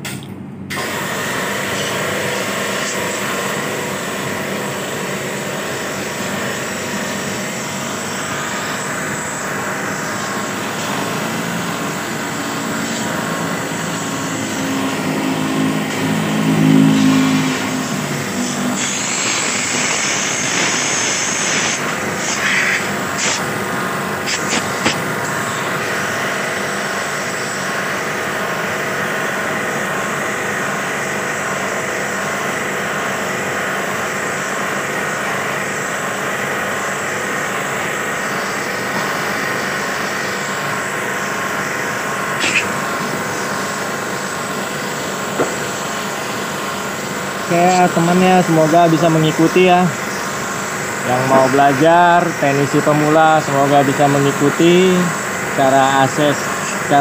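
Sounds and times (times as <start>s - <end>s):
pressure washer pump humming: 0.0s - 57.0s
water jet hissing: 0.7s - 27.8s, 38.2s - 57.0s.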